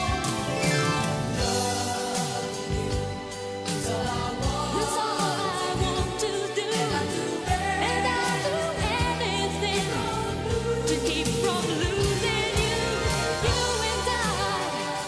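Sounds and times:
full band backing: 0.0 - 15.0
woman singing with vibrato: 3.8 - 15.0.

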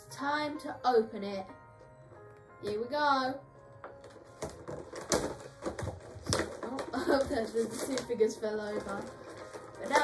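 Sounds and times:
plastic figures toppling on table: 3.9 - 10.0
cardboard box handled and opened: 4.0 - 10.0.

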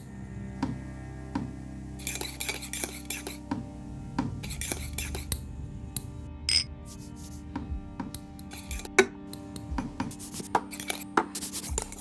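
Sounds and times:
background music with slow beat: 0.0 - 12.0
tableware clinking and scraping: 6.5 - 6.7.

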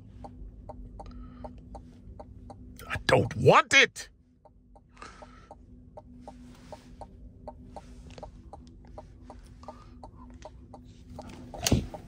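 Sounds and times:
low steady cabin hum: 0.0 - 12.0
turn signal ticking: 0.0 - 12.0.

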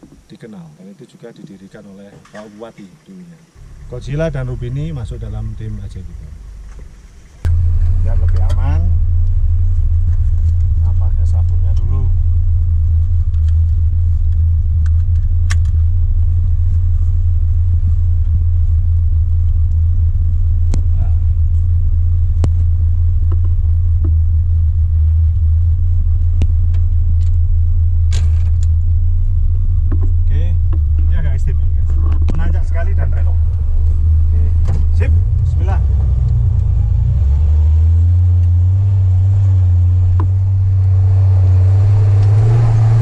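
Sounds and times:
engine idling: 3.4 - 43.0.

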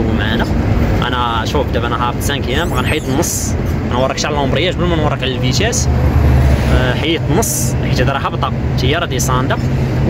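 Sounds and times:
person speaking: 2.4 - 3.7.

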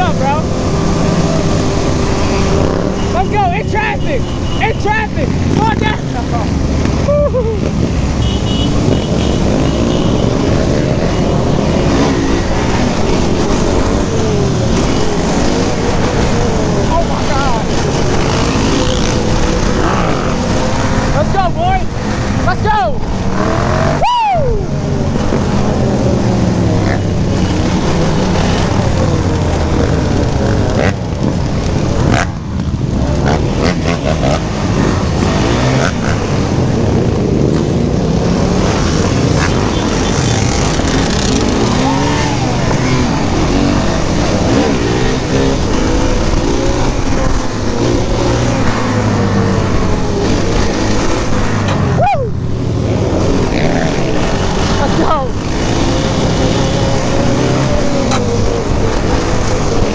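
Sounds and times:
dirt bikes revving: 0.0 - 59.9
quad engine revving: 8.8 - 21.3, 23.3 - 24.0, 25.2 - 59.9.

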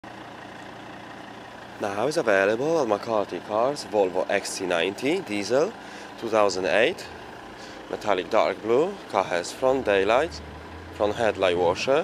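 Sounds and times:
vehicle engine idling: 0.0 - 12.0
man speaking: 7.9 - 10.4, 11.0 - 12.0.

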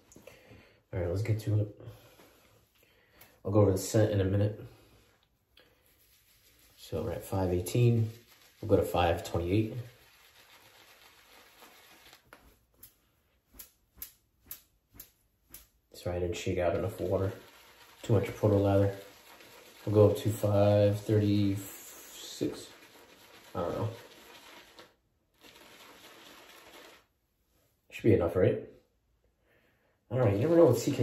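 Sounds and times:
shaving brush wet swishing: 5.6 - 15.8, 16.6 - 27.1, 30.2 - 31.0.

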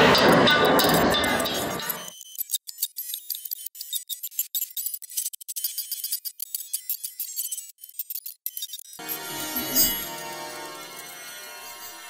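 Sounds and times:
digital glitch sound effect: 0.0 - 12.0.

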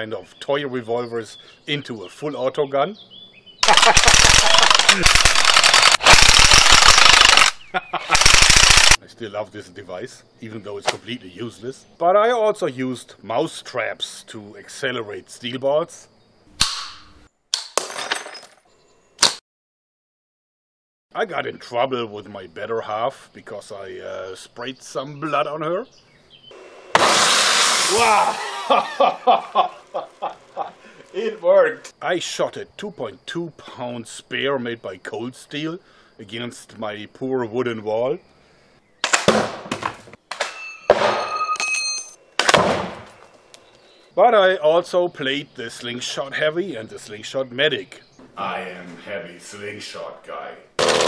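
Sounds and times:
mousetrap snaps: 16.6 - 17.7
spear hitting wooden wall: 39.0 - 41.3, 42.4 - 43.1
ringing metal ball hit: 40.4 - 42.2.

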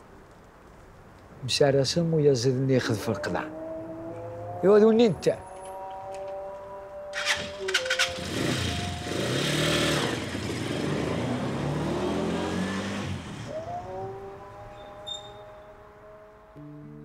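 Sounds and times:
small engine revving: 5.4 - 15.6.

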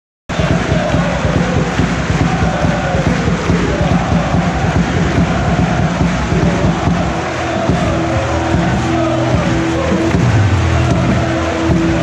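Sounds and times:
stadium crowd noise: 0.3 - 12.0
music with held notes: 3.8 - 12.0.

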